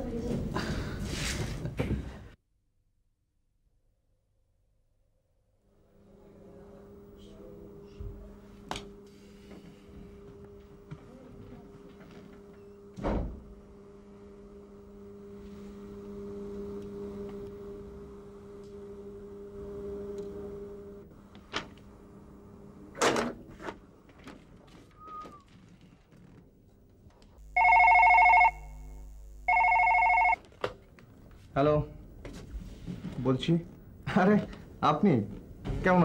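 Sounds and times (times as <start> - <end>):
steady low hum: 5.7 - 24.8, 26.4 - 36.0
electronic telephone ringing: 27.4 - 30.4.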